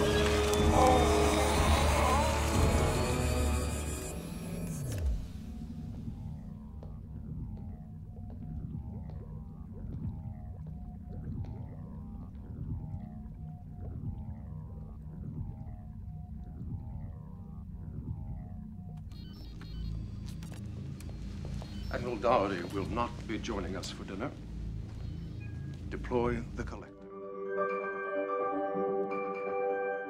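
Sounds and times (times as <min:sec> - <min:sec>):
low rumbling drone: 0:00.0 - 0:18.8
electronic blips and chirps: 0:16.6 - 0:24.1.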